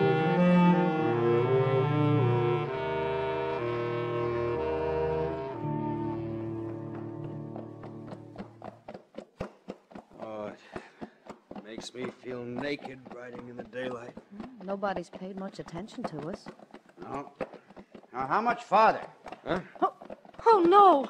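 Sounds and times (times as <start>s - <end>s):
orchestral strings and brass: 0.0s - 8.2s
horses' hoofbeats: 2.2s - 21.0s
voices: 11.7s - 17.5s, 18.1s - 21.0s.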